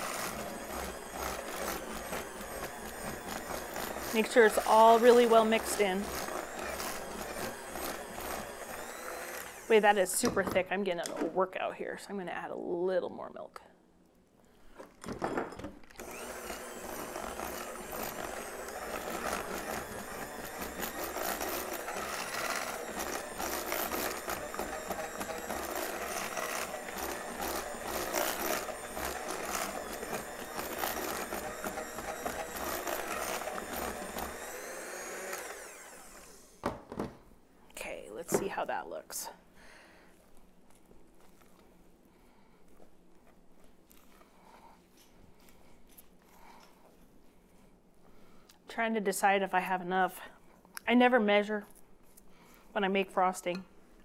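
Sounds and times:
electric hand mixer running: 0:00.0 - 0:10.6, 0:16.0 - 0:36.8.

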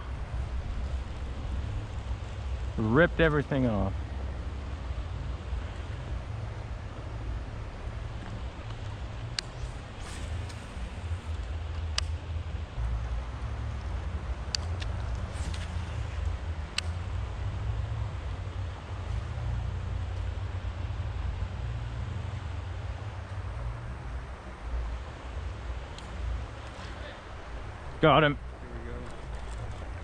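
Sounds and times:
river water flowing: 0:00.0 - 0:30.0
wind rumble on microphone: 0:00.0 - 0:30.0.

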